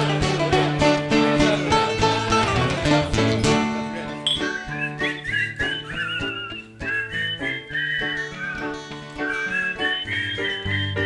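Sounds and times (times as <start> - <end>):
bouzouki guitar and piano: 0.0 - 11.0
high wavering melody line: 4.2 - 11.0.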